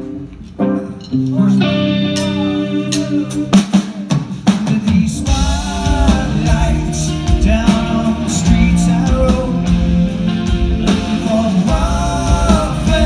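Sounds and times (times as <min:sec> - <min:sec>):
bass guitar: 0:00.0 - 0:13.0
electric guitar chords: 0:00.0 - 0:13.0
drum and cymbal hits: 0:02.1 - 0:13.0.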